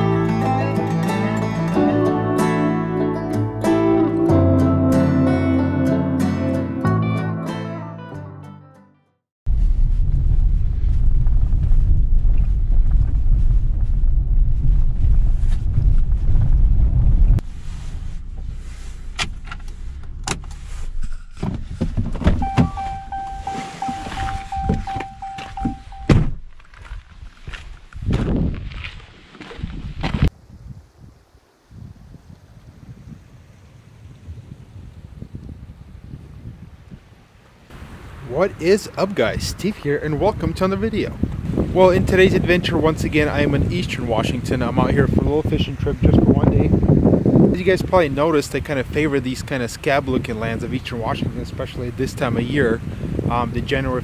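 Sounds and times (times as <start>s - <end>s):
truck cab rumble on gravel: 9.5s - 29.0s
faint wind: 9.5s - 54.0s
thuds: 19.1s - 27.0s
steady door chime: 22.4s - 26.2s
sharp thunk: 24.0s - 26.5s
car door clicks and knocks: 24.7s - 26.4s.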